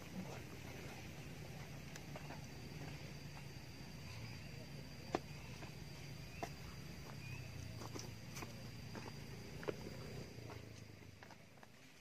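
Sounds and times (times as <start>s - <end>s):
steady low hum: 0.0s - 12.0s
thin steady high tone: 0.0s - 12.0s
footstep scuffs on bare ground: 6.3s - 12.0s.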